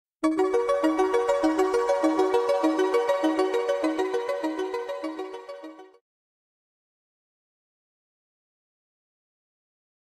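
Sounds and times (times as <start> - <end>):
bell-like intro music: 0.2 - 6.0.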